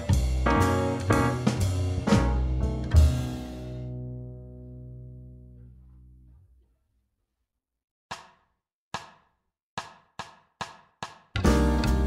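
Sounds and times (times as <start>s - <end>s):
percussion count-in taps: 8.1s - 12.0s.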